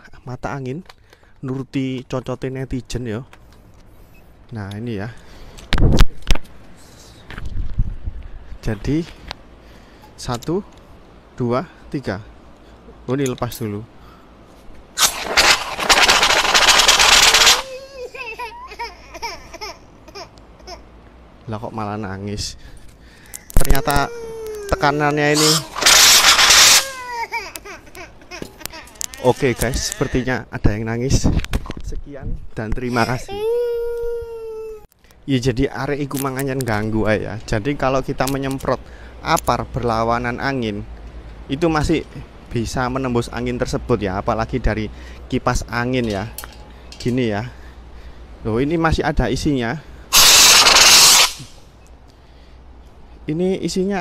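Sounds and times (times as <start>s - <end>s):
fire extinguisher hissing: 15.0s - 17.7s, 25.3s - 27.0s, 50.1s - 51.6s
toddler crying: 17.6s - 20.8s, 23.6s - 25.8s, 26.6s - 30.3s, 32.9s - 34.9s.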